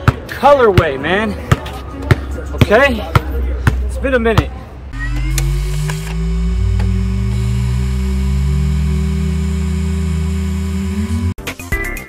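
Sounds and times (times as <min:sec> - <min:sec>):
higher hum: 0:04.9 - 0:11.4
synthesized low drone: 0:04.9 - 0:11.4.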